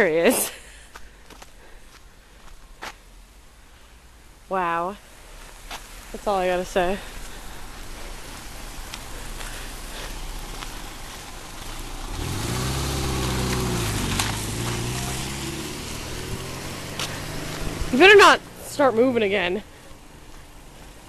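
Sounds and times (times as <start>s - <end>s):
car engine approaching: 5.1s - 21.0s.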